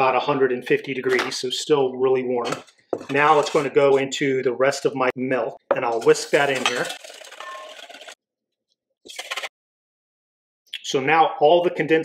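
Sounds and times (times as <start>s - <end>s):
whisk scraping metal bowl: 2.6s - 4.0s, 6.0s - 8.2s.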